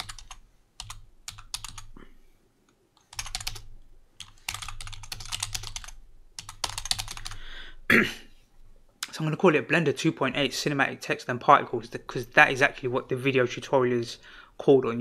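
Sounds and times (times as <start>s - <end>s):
typing on computer keyboard: 0.0s - 1.9s, 3.0s - 7.4s.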